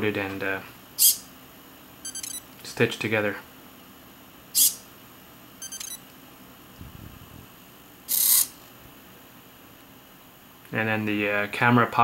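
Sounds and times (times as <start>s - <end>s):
camera beep: 2.0s - 2.5s, 5.6s - 6.0s.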